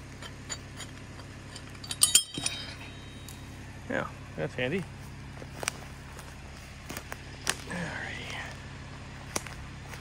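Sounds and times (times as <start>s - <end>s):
engine idling: 0.0s - 10.0s
metal hook clinking: 0.2s - 3.4s.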